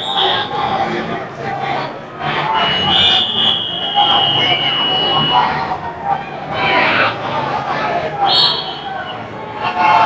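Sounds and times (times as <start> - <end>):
crowd chatter: 0.0 - 10.0
high electronic buzzer tone: 2.6 - 5.6.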